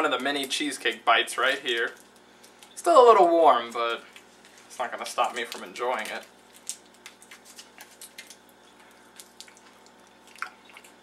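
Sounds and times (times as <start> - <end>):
wet mouth eating sounds: 6.6 - 11.0.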